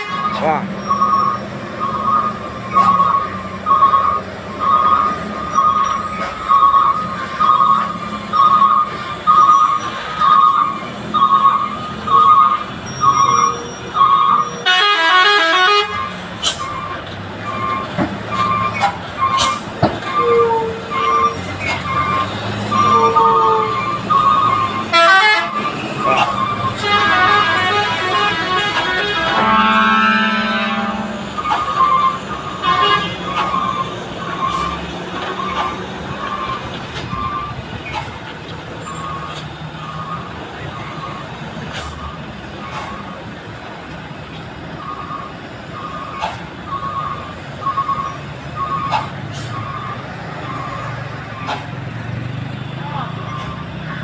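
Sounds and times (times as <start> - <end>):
diesel truck engines idling: 0.0 - 54.0
truck reversing alarm beeping: 0.0 - 54.0
pitched horn tones: 12.1 - 16.7, 19.4 - 36.4
loud horn blasts: 14.3 - 16.2, 24.8 - 33.6.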